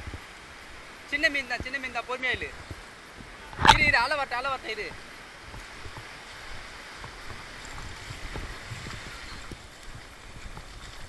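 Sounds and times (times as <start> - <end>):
small waves washing over sand: 0.0 - 11.0.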